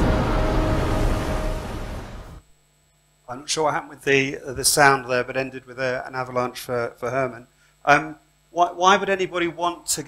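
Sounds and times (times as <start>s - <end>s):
avalanche rumble: 0.0s - 2.4s
faint sustained music tones: 0.0s - 2.4s.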